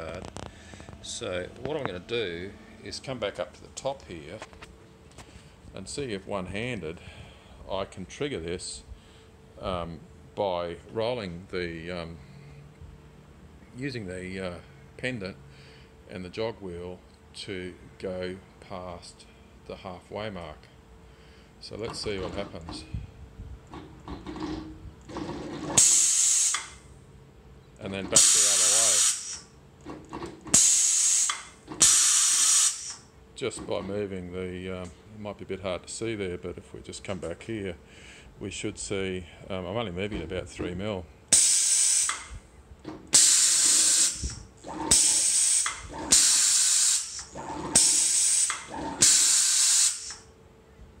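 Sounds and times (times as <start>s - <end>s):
gantry motors whirring: 24.0s - 26.8s, 28.0s - 33.0s, 42.9s - 50.2s
compressed air hiss: 25.8s - 26.8s, 28.2s - 29.5s, 30.6s - 33.0s, 41.3s - 42.3s, 43.1s - 50.3s.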